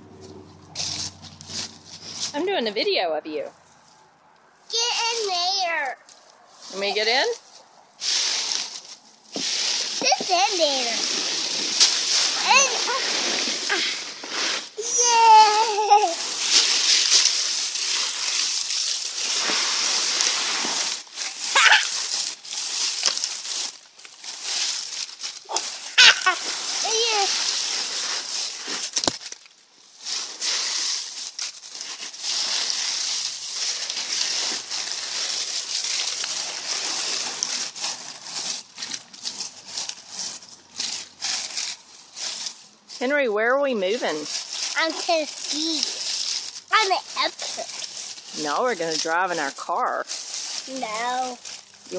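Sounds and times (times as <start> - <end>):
dry leaves rustling and crunching: 0.0 - 2.7, 4.7 - 51.9
child squealing: 13.7 - 14.0, 14.8 - 16.2, 21.4 - 22.1, 25.5 - 27.4.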